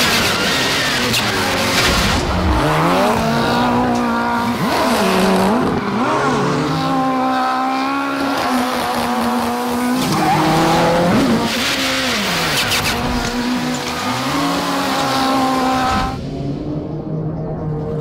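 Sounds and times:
car engine revving: 0:00.0 - 0:18.0.

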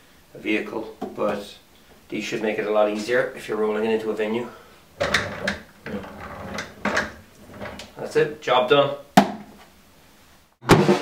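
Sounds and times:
casters rolling on tiled floor: 0:05.0 - 0:08.0.

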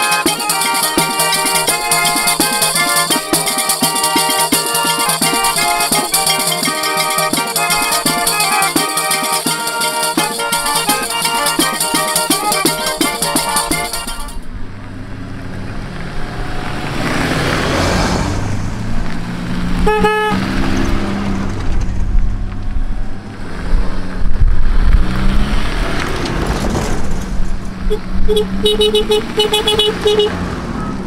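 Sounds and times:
car horn toot: 0:00.0 - 0:14.5, 0:19.8 - 0:20.5, 0:27.8 - 0:31.0
car engines driving past: 0:14.4 - 0:31.0.

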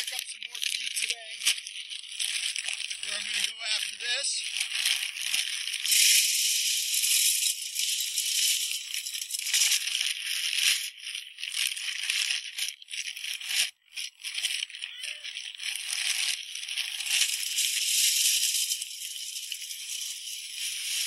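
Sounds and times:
grain pouring into metal feeder: 0:00.0 - 0:14.8, 0:15.4 - 0:21.0
paper sack crinkling: 0:00.0 - 0:21.0.

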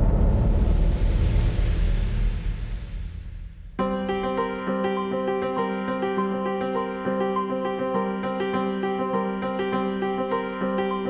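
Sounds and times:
deep rumbling boom: 0:00.0 - 0:03.8.

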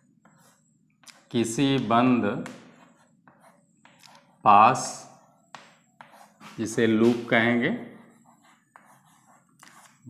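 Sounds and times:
chalk scratching on blackboard: 0:02.5 - 0:10.0.

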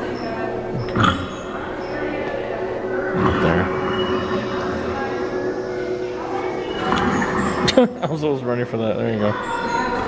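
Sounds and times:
steady hum: 0:00.0 - 0:09.2
indistinct background voices: 0:00.0 - 0:10.0.

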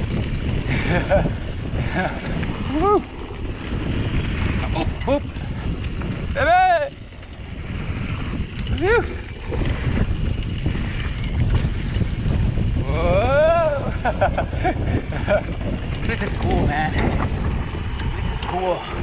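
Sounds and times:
bike tyres rolling over dirt: 0:00.0 - 0:19.0
wind buffeting microphone: 0:00.0 - 0:19.0
rider calling out: 0:04.6 - 0:07.2, 0:12.8 - 0:14.0.

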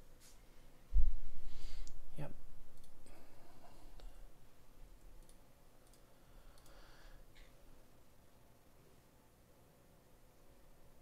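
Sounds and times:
computer mouse clicks: 0:05.2 - 0:06.8.

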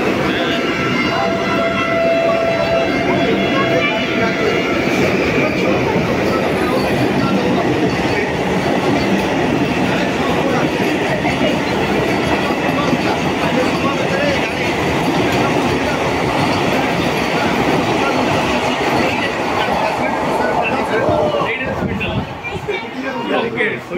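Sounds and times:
people talking: 0:00.0 - 0:23.9
train wheels clattering on rails: 0:02.9 - 0:21.4.

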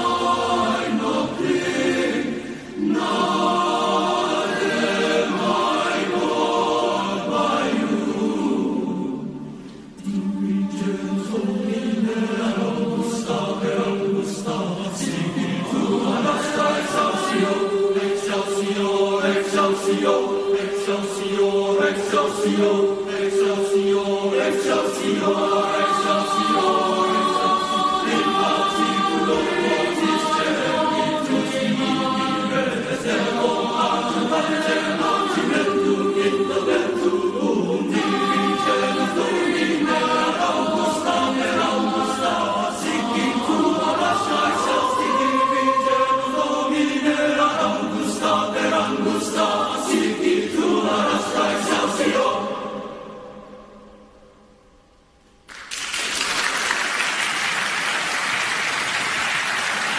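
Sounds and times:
boys' choir singing: 0:00.0 - 0:54.2.

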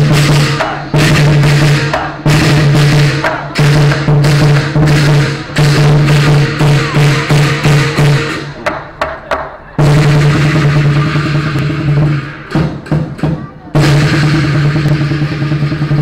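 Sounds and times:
cymbals clashing: 0:00.0 - 0:08.7, 0:09.8 - 0:16.0
large drum beating: 0:00.0 - 0:16.0.

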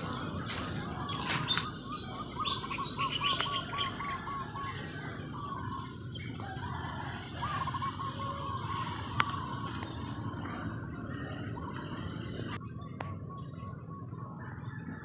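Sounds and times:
bird calling in rapid notes: 0:00.0 - 0:12.6
high bird chirps: 0:00.0 - 0:13.9.

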